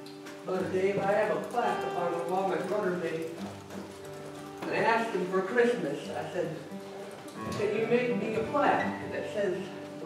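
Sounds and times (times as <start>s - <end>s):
acoustic guitar playing softly: 0.0s - 10.0s
person's voice: 0.5s - 3.4s, 7.4s - 9.8s.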